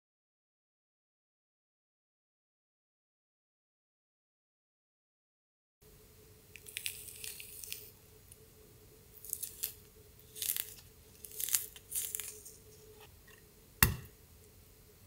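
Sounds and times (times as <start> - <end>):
faint steady hum: 5.8 - 15.0
orange segments tearing wetly: 6.6 - 7.9, 9.2 - 12.6.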